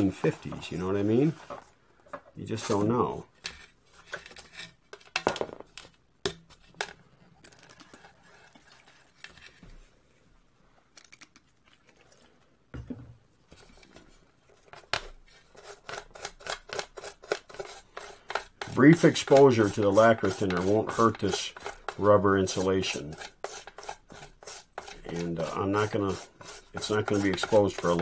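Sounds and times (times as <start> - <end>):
toothbrush scrubbing wire: 15.5 - 28.0.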